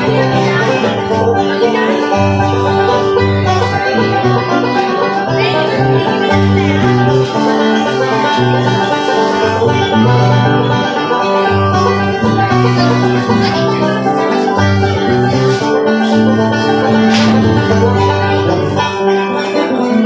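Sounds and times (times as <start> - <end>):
acoustic guitar: 0.0 - 20.0
banjo picking: 0.0 - 20.0.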